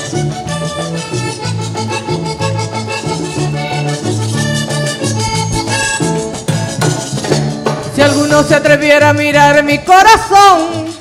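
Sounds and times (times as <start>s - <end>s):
electric bass line: 0.0s - 9.7s
button accordion melody: 0.0s - 11.0s
electric guitar: 0.0s - 11.0s
hand percussion: 0.0s - 11.0s.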